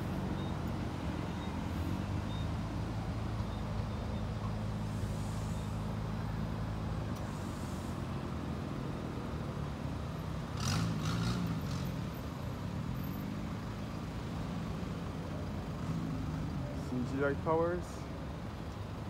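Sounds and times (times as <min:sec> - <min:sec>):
car and van engines humming: 0:00.0 - 0:19.0
vehicles passing: 0:00.0 - 0:19.0.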